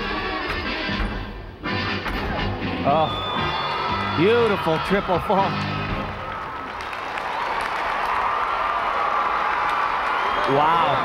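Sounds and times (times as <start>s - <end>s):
crowd applauding and cheering: 2.8s - 11.0s.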